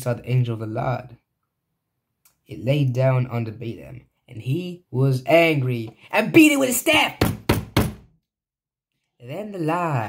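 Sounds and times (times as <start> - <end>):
hand knocking on table: 7.2 - 8.1.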